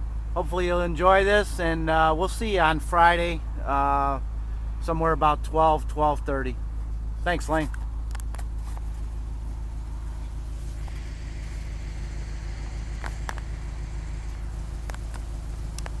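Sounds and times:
vehicle engine idling: 0.0 - 16.0.

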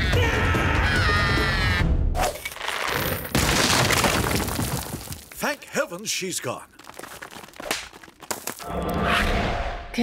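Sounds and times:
stone statue crashing and crumbling: 2.5 - 8.7.

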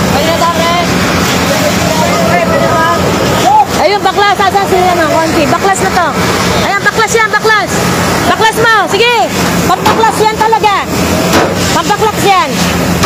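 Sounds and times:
fire engine running: 0.0 - 13.0
men shouting calls: 1.7 - 6.0.

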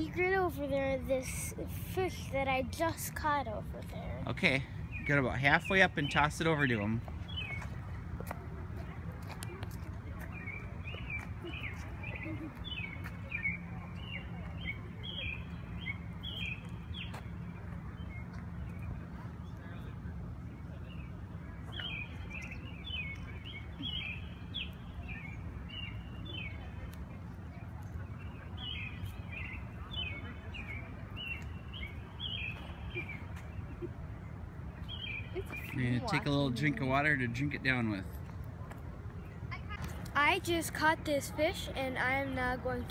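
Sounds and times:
songbird chirping: 0.0 - 19.6, 20.5 - 37.9.

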